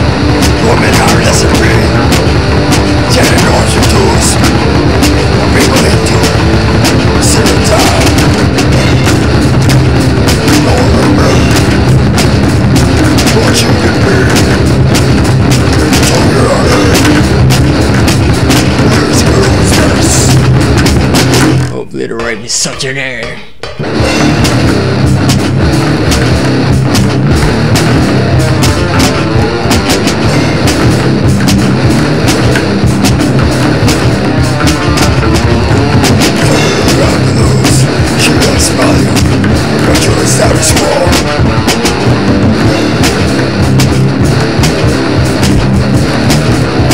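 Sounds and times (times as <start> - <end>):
electric bass: 0.0 - 21.8, 23.6 - 46.9
drum hits: 0.0 - 46.9
heavy metal song: 0.0 - 46.9
metal music: 0.0 - 46.9.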